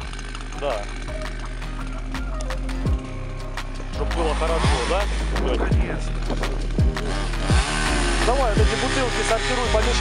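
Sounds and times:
chainsaw engine idling: 0.0 - 10.0
sharp clicks: 2.1 - 2.9.

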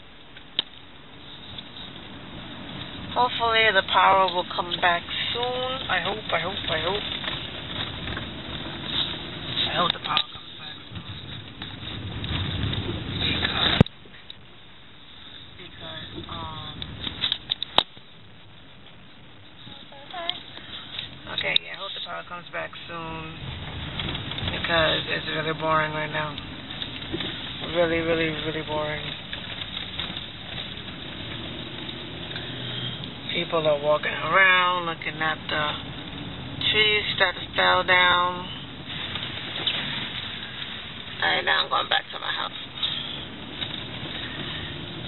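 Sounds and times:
car engine and tyre rumble: 0.0 - 45.0
road noise: 0.0 - 45.0.

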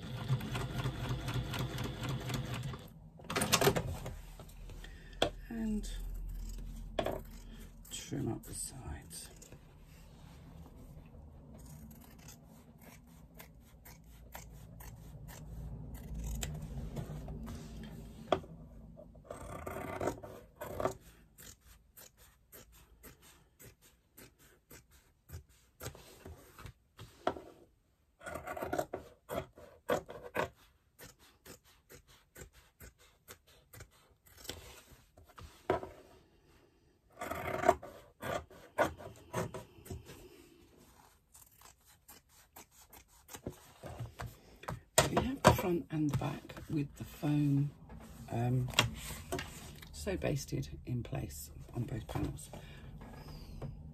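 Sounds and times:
scissors snipping foam: 11.5 - 16.9, 19.4 - 26.7, 28.3 - 35.3, 41.1 - 44.4.

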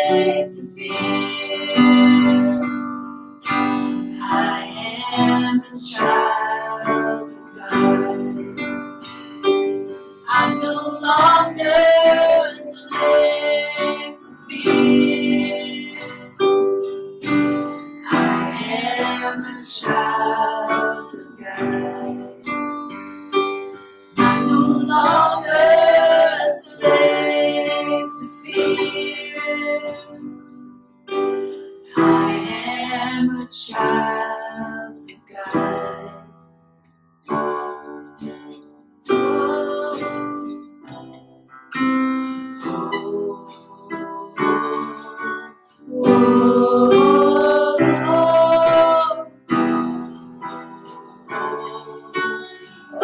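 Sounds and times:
woman singing: 0.0 - 2.8, 4.2 - 8.7, 10.3 - 16.4, 18.0 - 22.6, 24.2 - 30.2, 31.9 - 36.3, 39.1 - 40.6, 42.6 - 53.0
electric keyboard chords: 0.0 - 36.4, 37.0 - 53.0
acoustic guitar strumming: 0.0 - 53.0
digital piano: 0.0 - 53.0.

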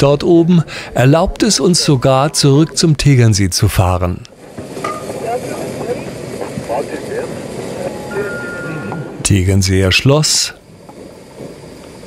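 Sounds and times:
steady rushing noise: 0.0 - 12.0
thin steady tone: 6.8 - 12.0.

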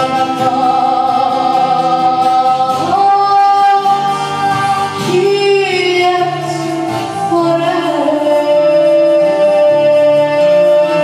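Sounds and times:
acoustic guitar: 0.0 - 11.0
keyboard: 0.0 - 11.0
woman singing through a pa: 0.0 - 11.0.

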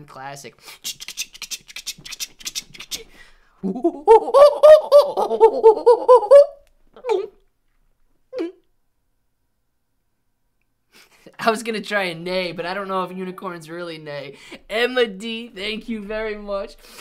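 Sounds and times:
mouth clicks: 0.8 - 3.2
man laughing: 3.6 - 7.2
man imitating a horse whinny: 3.7 - 7.3.

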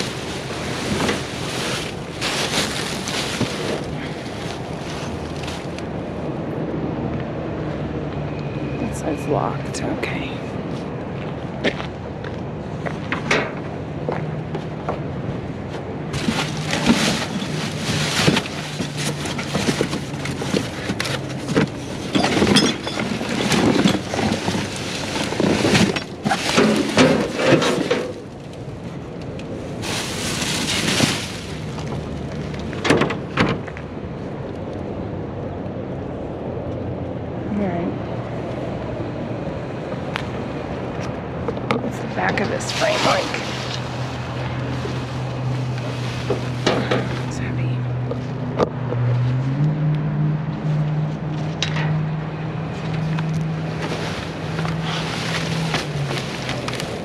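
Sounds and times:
cardboard and plastic bags rustling: 0.0 - 6.0, 16.1 - 33.7, 42.1 - 47.6, 53.0 - 57.0.

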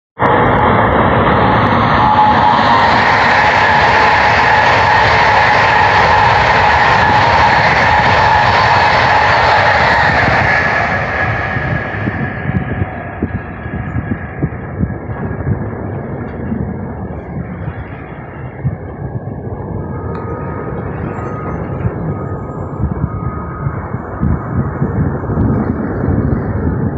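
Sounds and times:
high-speed train passing: 0.2 - 26.9
steady whine: 0.2 - 26.9.

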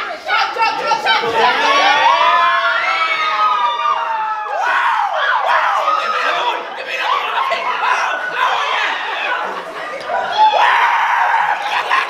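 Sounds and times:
group cheering and whooping: 0.2 - 12.0.

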